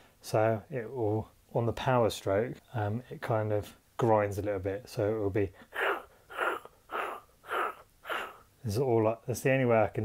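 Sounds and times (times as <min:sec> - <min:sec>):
man laughing softly: 0:05.7 - 0:08.4.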